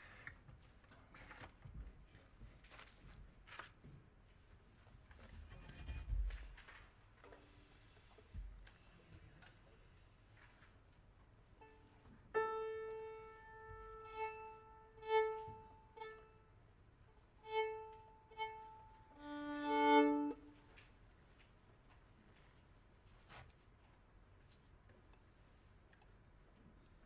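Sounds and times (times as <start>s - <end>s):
violin strings bowed: 12.4s - 16.5s, 17.4s - 20.6s.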